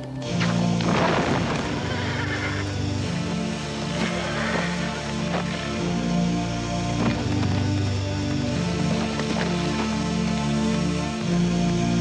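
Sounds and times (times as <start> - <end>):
orchestral film music: 0.0 - 12.0.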